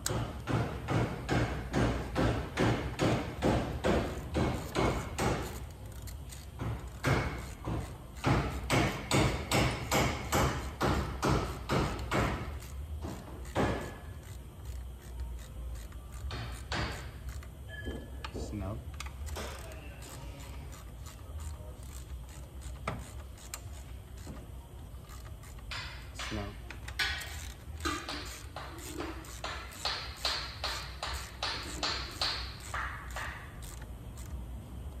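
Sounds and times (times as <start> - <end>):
metal-on-metal clicking: 18.9 - 35.0.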